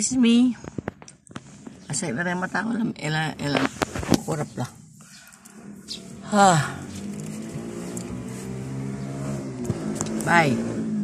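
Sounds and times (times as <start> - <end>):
car engine humming: 1.2 - 11.0.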